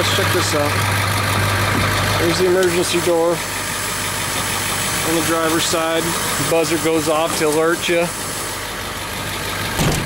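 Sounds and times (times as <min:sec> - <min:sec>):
diesel engine idling: 0:00.0 - 0:10.0
low thump: 0:09.8 - 0:10.0.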